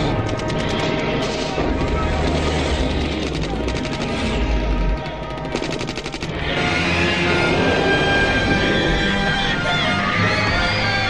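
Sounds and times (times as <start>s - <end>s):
orchestral film music: 0.0s - 11.0s
automatic gunfire bursts: 1.8s - 4.7s, 5.4s - 6.6s.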